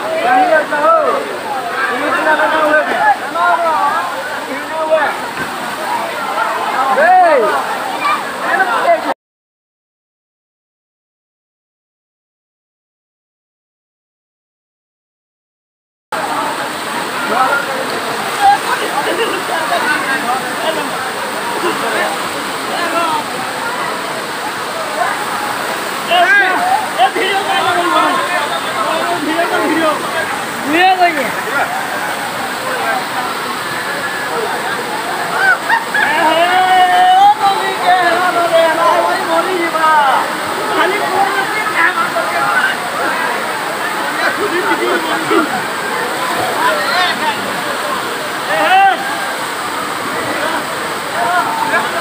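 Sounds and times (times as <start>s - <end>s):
people shouting and talking: 0.0s - 9.2s, 16.2s - 52.0s
waterfall rushing: 0.0s - 9.2s, 16.2s - 52.0s
people calling out: 24.8s - 52.0s.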